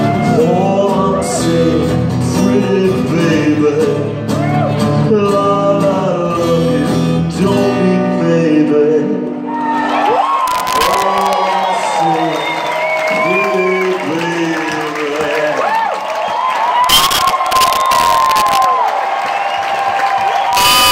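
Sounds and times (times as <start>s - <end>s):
concert crowd cheering: 0.0s - 2.0s, 4.2s - 5.0s, 9.4s - 20.9s
sharp cracks: 10.5s - 11.4s, 16.9s - 18.8s
whoops and whistles: 11.4s - 13.9s, 16.2s - 20.9s.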